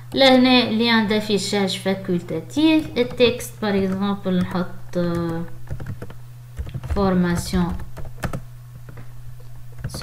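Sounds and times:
computer keyboard typing: 0:02.7 - 0:09.0, 0:09.7 - 0:10.0.

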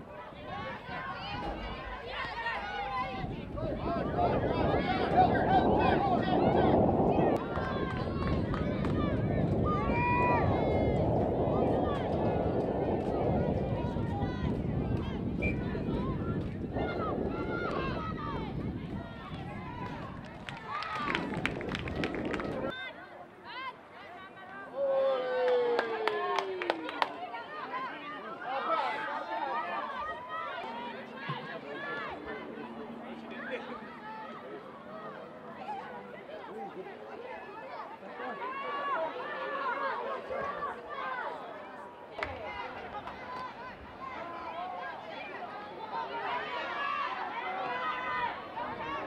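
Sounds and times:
low outdoor noise: 0:00.0 - 0:49.0
people calling out and chattering: 0:00.0 - 0:49.0.

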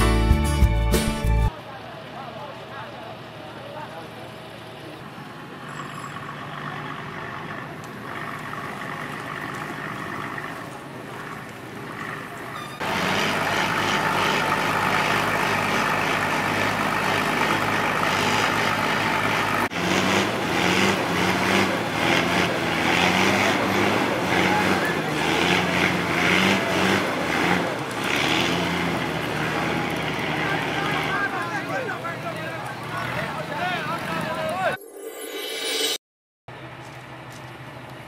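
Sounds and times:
diesel lorry engine under load: 0:01.5 - 0:34.7, 0:36.5 - 0:38.0
truck engine revving: 0:06.0 - 0:34.8
people's voices: 0:23.5 - 0:27.9, 0:29.4 - 0:34.8.

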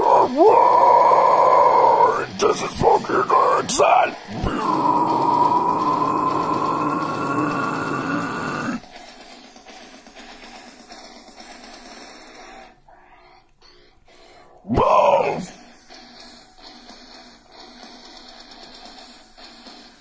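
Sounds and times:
growled shout: 0:00.0 - 0:08.8, 0:14.7 - 0:15.6
harsh metal scream: 0:00.0 - 0:08.8, 0:14.7 - 0:15.6.

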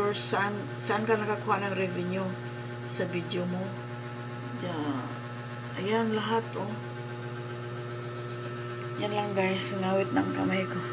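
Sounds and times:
low electrical hum: 0:00.0 - 0:10.9.

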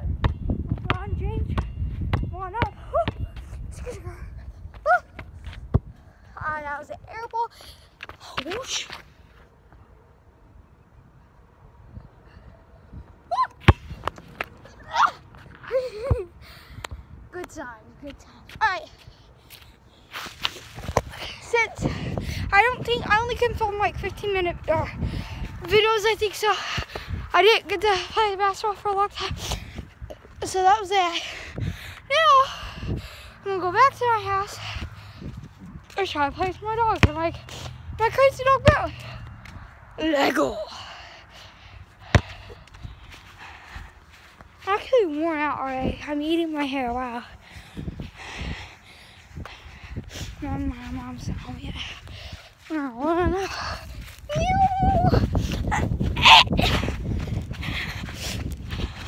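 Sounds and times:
basketball bouncing on asphalt: 0:00.0 - 0:03.5, 0:35.3 - 0:39.6, 0:41.9 - 0:42.8
basketball bouncing: 0:00.2 - 0:03.2, 0:36.9 - 0:37.3
girl exclaiming: 0:03.8 - 0:05.2, 0:13.3 - 0:13.7, 0:14.8 - 0:16.2, 0:54.2 - 0:56.8.

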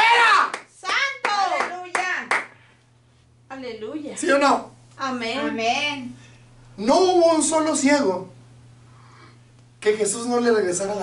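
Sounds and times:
sharp handclaps: 0:00.0 - 0:02.6
low steady hum: 0:00.0 - 0:11.0.

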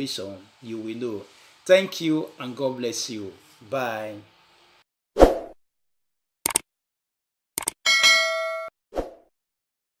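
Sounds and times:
notification bell ding: 0:07.9 - 0:08.7.

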